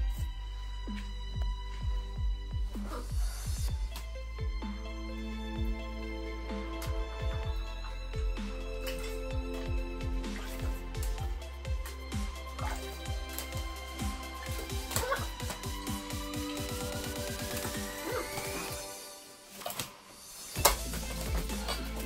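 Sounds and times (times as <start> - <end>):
background music with fast beat: 0.0 - 19.4, 20.2 - 22.0.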